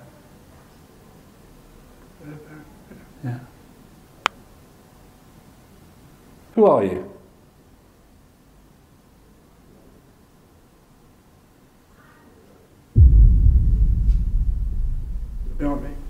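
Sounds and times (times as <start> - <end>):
loud deep rumble: 13.0 - 16.0.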